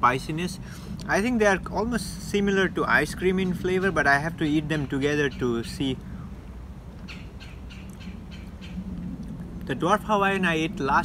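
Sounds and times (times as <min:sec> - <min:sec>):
low background hum: 0:00.0 - 0:11.0
bird chirping: 0:03.2 - 0:05.9, 0:07.0 - 0:08.9.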